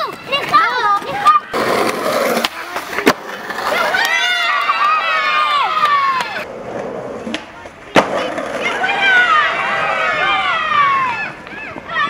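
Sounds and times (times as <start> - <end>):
skateboard clack: 0.0 - 12.0
skateboard wheels rolling: 0.0 - 12.0
long falling yell: 8.8 - 12.0.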